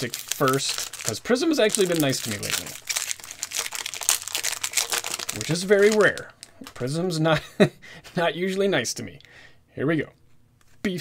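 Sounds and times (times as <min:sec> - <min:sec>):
plastic wrapper crinkling and tearing: 0:00.0 - 0:07.0.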